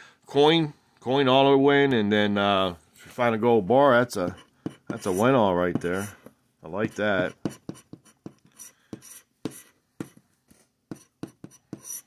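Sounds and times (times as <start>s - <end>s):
scratching lottery ticket: 4.2s - 6.2s, 6.8s - 10.2s, 10.9s - 12.0s.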